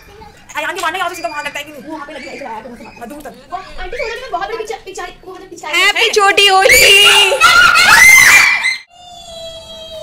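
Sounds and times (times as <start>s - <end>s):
child shrieking: 6.7s - 10.0s.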